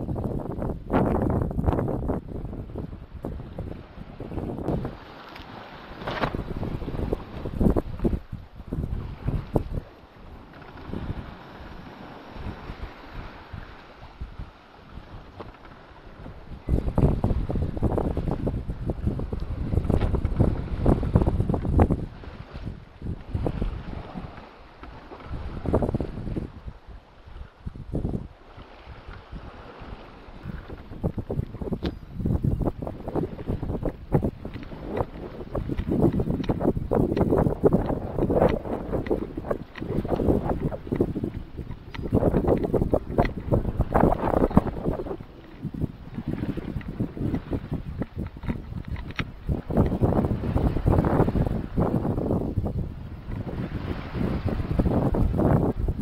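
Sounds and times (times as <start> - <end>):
sea water rushing past hull: 0.0 - 56.0
wind buffeting microphone: 0.0 - 56.0.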